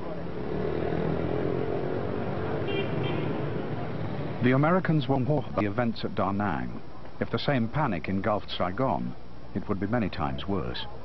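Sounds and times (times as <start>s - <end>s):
motorbike and scooter engines: 0.0s - 5.6s.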